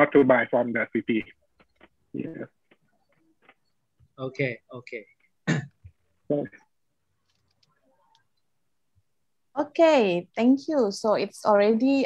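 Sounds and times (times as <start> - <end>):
person clearing throat: 5.4 - 5.9.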